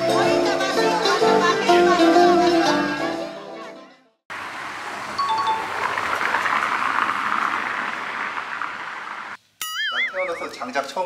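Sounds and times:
car driving along street: 0:04.3 - 0:09.4
two-note falling beep: 0:09.6 - 0:10.9.

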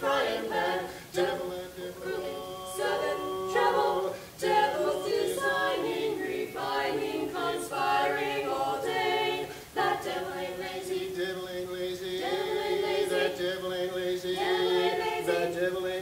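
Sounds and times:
voices singing a cappella: 0:00.0 - 0:16.0.

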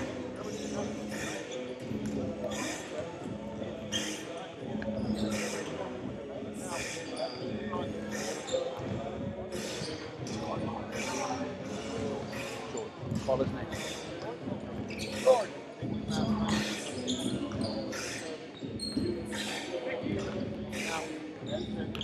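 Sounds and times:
murmur of voices: 0:00.0 - 0:22.0.

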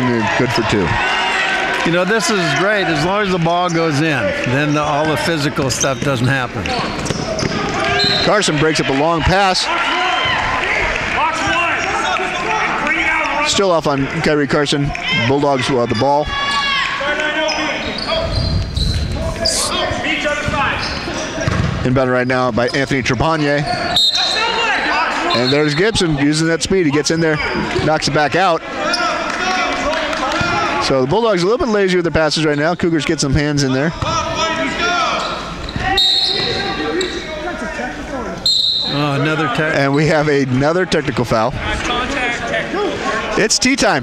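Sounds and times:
gym crowd noise: 0:00.0 - 0:44.0
players calling out: 0:00.0 - 0:44.0
referee's whistle: 0:07.4 - 0:08.5, 0:23.7 - 0:24.6, 0:25.2 - 0:25.9, 0:35.1 - 0:37.3, 0:38.4 - 0:39.2
basketball bouncing on hardwood: 0:21.4 - 0:21.8.

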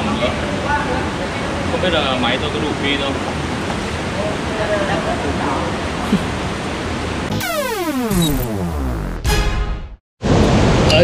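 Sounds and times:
falling tone sound effect: 0:07.3 - 0:09.5.

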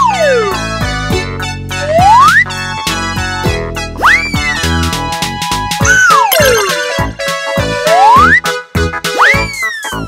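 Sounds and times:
bouncy cartoon music: 0:00.0 - 0:10.0
whistling boing sound effects: 0:05.9 - 0:06.8.

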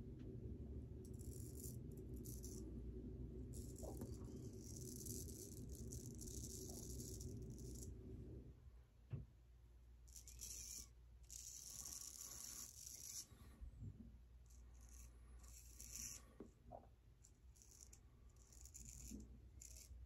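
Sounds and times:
razor scraping stubble: 0:03.6 - 0:07.9, 0:10.1 - 0:13.4, 0:14.5 - 0:16.3, 0:17.2 - 0:20.0.

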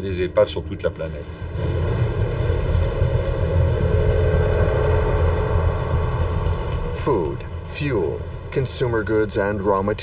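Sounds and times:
deep rumble: 0:00.0 - 0:10.0
sustained drone tone: 0:00.0 - 0:10.0.

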